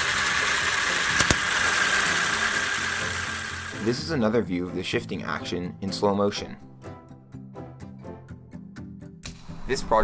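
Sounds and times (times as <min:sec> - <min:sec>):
gearbox whine and gear noise: 0:00.0 - 0:03.8.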